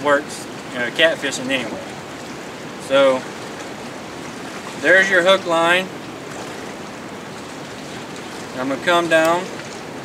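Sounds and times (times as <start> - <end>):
river water rushing: 0.0 - 10.0.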